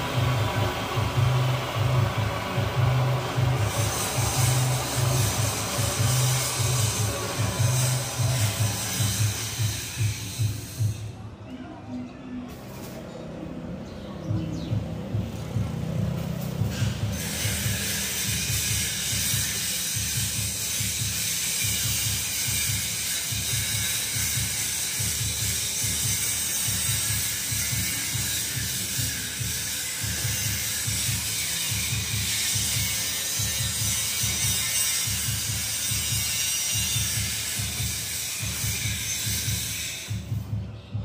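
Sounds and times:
welding arc crackling and hissing: 0:00.0 - 0:11.1, 0:15.3 - 0:40.4
music with low beat: 0:00.0 - 0:11.2, 0:14.2 - 0:17.8, 0:20.0 - 0:41.0.

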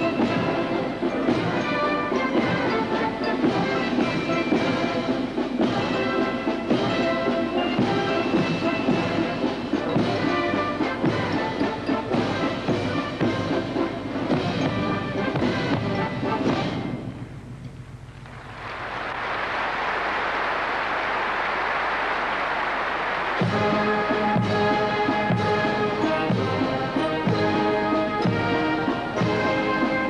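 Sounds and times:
brass band playing a march: 0:00.0 - 0:17.0, 0:22.5 - 0:30.0
audience applause: 0:18.3 - 0:25.3.

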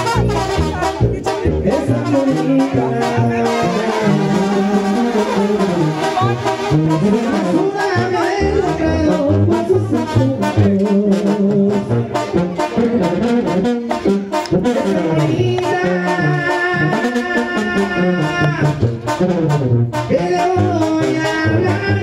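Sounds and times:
brass band music: 0:00.0 - 0:22.0
low bass line: 0:00.0 - 0:22.0
trumpets and trombones: 0:00.0 - 0:22.0.

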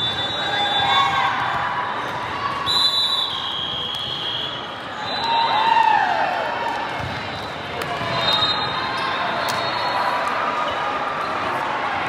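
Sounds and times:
referee's whistle: 0:00.0 - 0:01.2, 0:02.6 - 0:05.6, 0:08.1 - 0:10.2
crowd chatter in sports hall: 0:00.0 - 0:12.0.

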